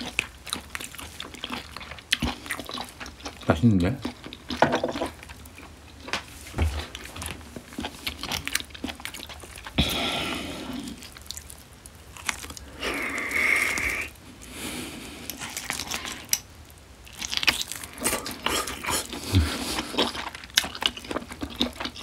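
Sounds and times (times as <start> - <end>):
chewing and biting smacks: 0.0 - 10.0, 10.8 - 14.0, 15.2 - 16.5, 17.1 - 22.0.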